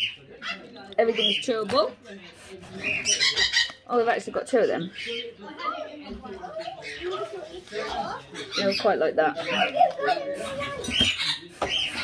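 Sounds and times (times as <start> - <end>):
parrots chirping and calling: 0.0 - 12.0.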